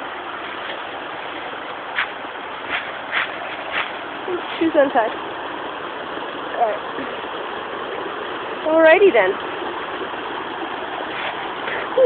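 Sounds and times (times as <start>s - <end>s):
river rushing over rocks: 0.0s - 12.0s.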